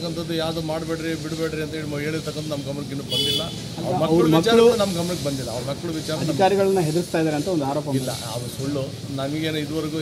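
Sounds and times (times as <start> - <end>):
faint steady hiss: 0.0 - 10.0
man speaking: 0.0 - 10.0.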